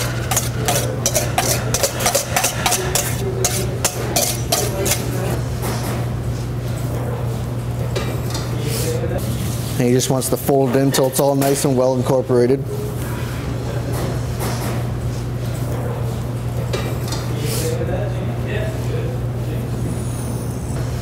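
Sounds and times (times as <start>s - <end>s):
rubber spatula scraping steel bowl: 0.0s - 5.1s
steady low hum: 0.0s - 10.4s.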